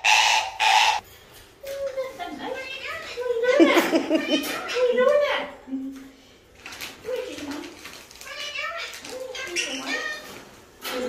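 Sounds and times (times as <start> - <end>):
parrot talking: 0.0 - 1.0, 2.4 - 5.6, 8.2 - 10.4.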